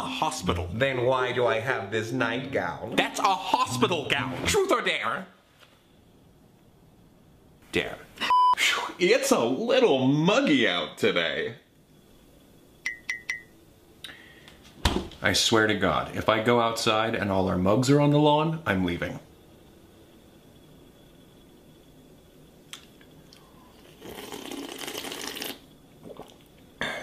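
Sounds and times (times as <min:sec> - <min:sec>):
person slurping: 0:23.8 - 0:26.5.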